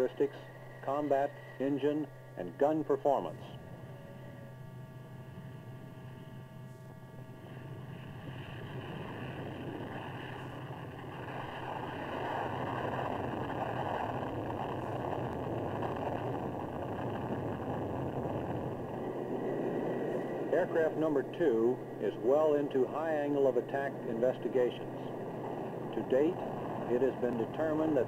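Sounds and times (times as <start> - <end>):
jet engines roaring at takeoff: 0.0 - 28.0.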